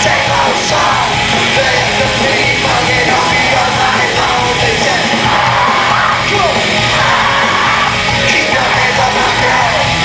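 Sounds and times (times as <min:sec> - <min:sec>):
pop-punk band playing live: 0:00.0 - 0:10.0
voices yelling: 0:00.0 - 0:10.0.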